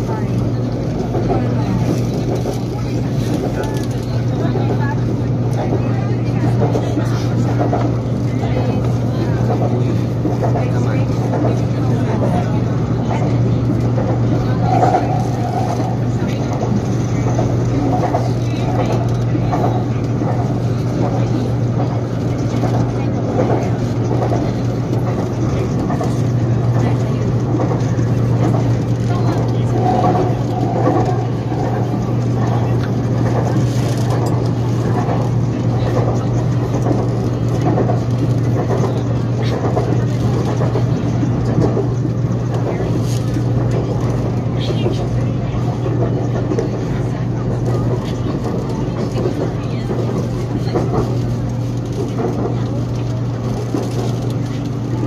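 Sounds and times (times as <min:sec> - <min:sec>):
faint voices: 0:00.0 - 0:55.0
train hum and rolling noise: 0:00.0 - 0:55.0.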